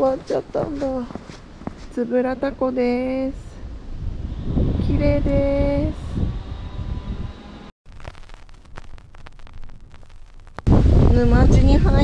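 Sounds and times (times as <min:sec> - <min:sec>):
wind buffeting microphone: 0:02.4 - 0:07.5, 0:10.6 - 0:12.0
faint clicks and crackles: 0:07.9 - 0:10.7.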